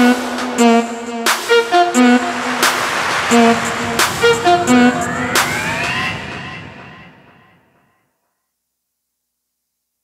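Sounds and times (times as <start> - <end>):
instrumental karaoke backing track: 0.0 - 7.7
faint tones gliding upward: 2.1 - 7.4.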